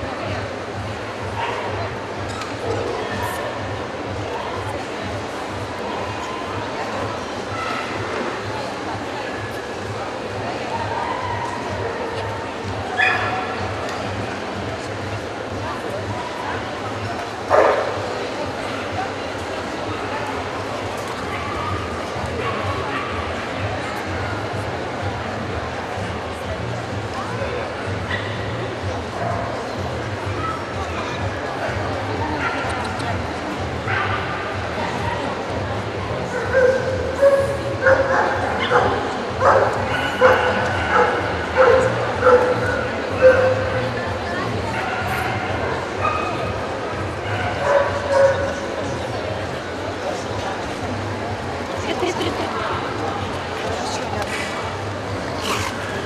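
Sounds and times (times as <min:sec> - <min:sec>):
crowd chatter: 0:00.0 - 0:56.0
dog barking: 0:36.5 - 0:42.6.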